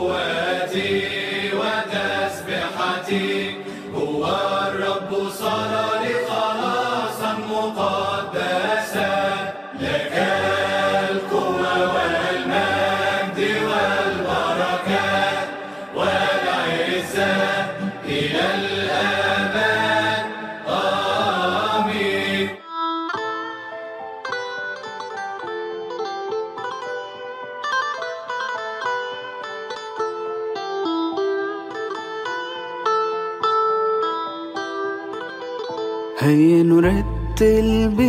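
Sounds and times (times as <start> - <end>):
group chanting a hymn: 0.0 - 22.6.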